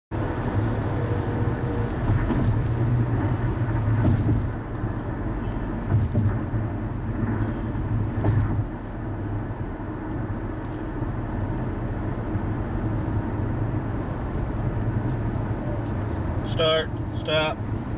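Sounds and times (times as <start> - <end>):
car road noise at highway speed: 0.1 - 17.9
car bumps: 2.0 - 2.8, 3.9 - 4.6, 5.7 - 6.6, 7.8 - 8.7.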